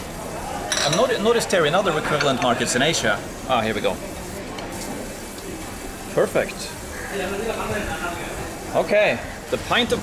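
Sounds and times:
busy stall background noise: 0.0 - 10.0
faint indistinct voices: 0.0 - 10.0.

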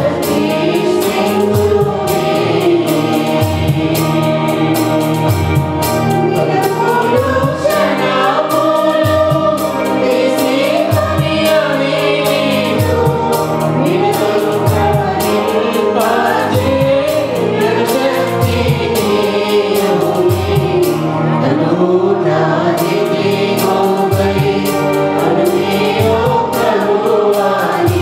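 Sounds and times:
electronic keyboard with beat: 0.0 - 21.4
choir singing worship song: 0.0 - 28.0.

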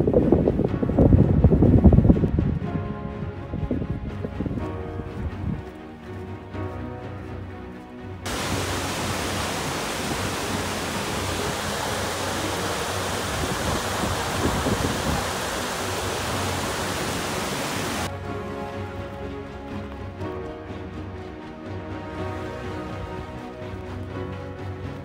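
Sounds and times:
background music: 0.0 - 25.0
waterfall rushing: 8.3 - 18.1.

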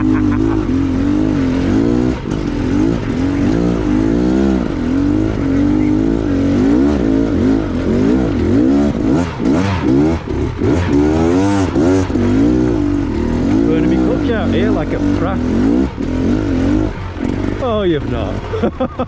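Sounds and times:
motorbike engine revving: 0.0 - 19.0.

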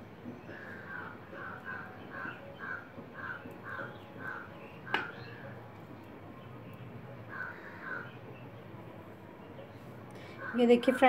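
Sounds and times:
bird calling: 0.4 - 5.6, 7.3 - 8.5.

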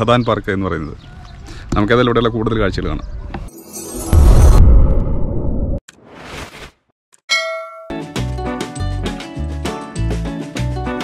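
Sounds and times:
whoosh: 3.6 - 5.8
bright metallic ding: 7.3 - 8.0.

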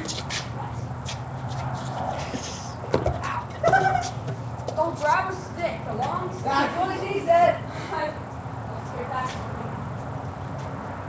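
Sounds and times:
voices calling out: 0.0 - 10.4
people laughing: 3.4 - 4.4.

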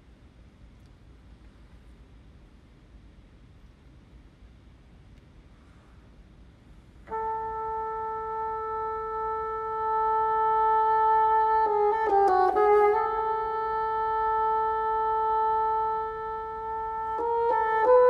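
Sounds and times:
bassoon playing: 7.1 - 18.0.

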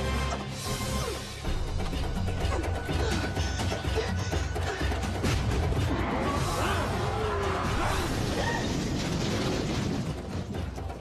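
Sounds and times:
rumbling rockfall: 7.0 - 11.0.

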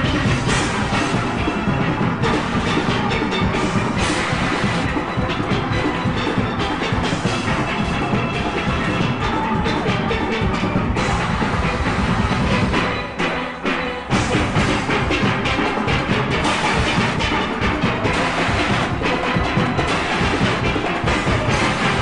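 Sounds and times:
drums and percussion: 0.0 - 22.0
steel pan band playing: 0.0 - 22.0.

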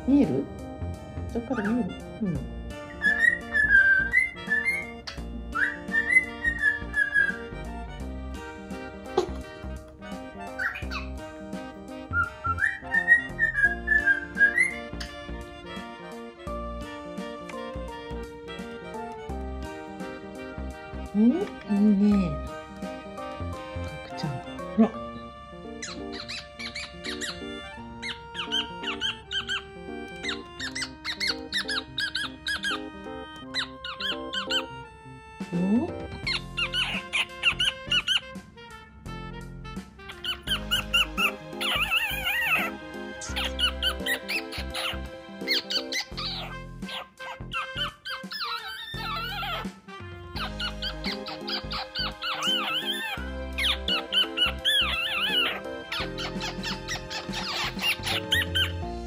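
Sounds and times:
background music with beat: 0.0 - 25.1, 34.2 - 48.3, 49.3 - 59.0
cockatiel warbling whistles: 2.9 - 7.5, 12.1 - 15.2, 36.3 - 38.2, 40.1 - 49.7, 50.4 - 58.8.

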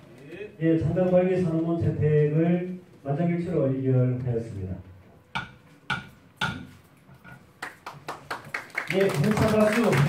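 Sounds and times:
sharp knock: 5.4 - 6.8
hand claps: 7.6 - 10.0.

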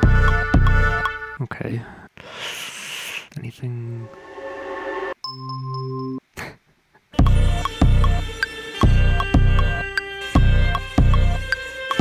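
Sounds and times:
electronic beat with synth pad: 0.0 - 1.4, 7.2 - 12.0
short breathy hiss: 2.2 - 3.3.

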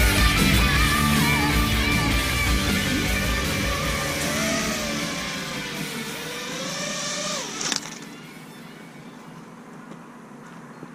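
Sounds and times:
quadcopter motors whirring: 0.6 - 9.4.

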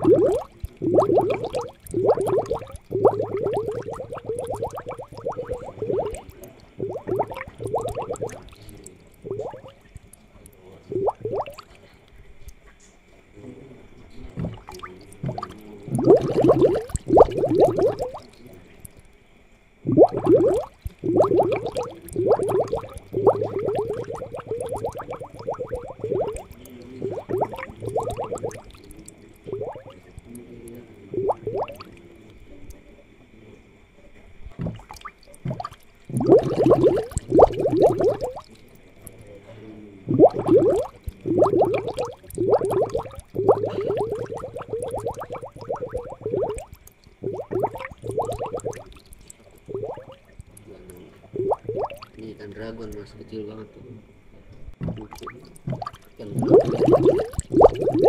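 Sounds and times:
aquarium air bubbles popping: 0.0 - 12.6, 14.0 - 19.1, 19.8 - 32.8, 34.4 - 53.1, 54.6 - 58.0.

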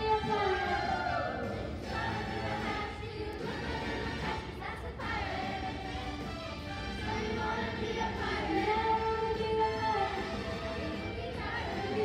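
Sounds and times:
children's chorus singing: 0.0 - 12.0
musical accompaniment: 0.0 - 12.0.

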